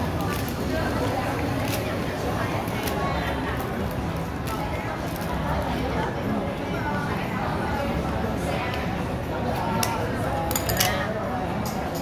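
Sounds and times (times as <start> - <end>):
hubbub of voices: 0.0 - 12.0.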